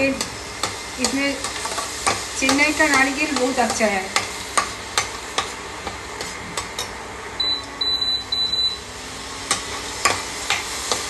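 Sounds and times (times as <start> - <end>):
coconut sizzling in a pan: 0.0 - 11.0.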